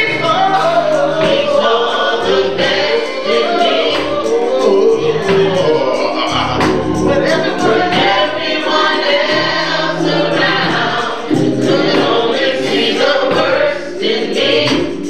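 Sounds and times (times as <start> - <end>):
group singing gospel in harmony: 0.0 - 15.0
light percussive beat: 0.0 - 15.0
organ: 0.0 - 15.0.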